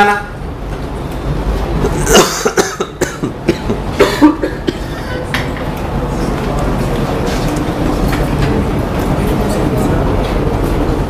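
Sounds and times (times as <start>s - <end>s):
low room rumble: 0.0s - 11.0s
murmur of voices: 1.0s - 11.0s.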